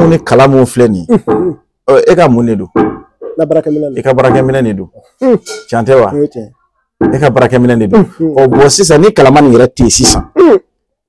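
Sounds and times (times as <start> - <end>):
man talking in low voice: 0.0 - 2.7, 3.4 - 10.6.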